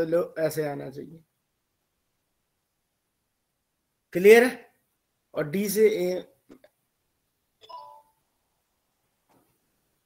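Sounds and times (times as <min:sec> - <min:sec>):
electronic notification chime: 0:07.6 - 0:08.2.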